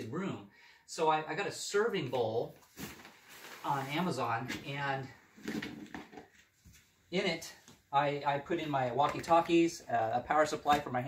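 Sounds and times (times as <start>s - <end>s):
plastic lid being handled: 5.4s - 6.5s.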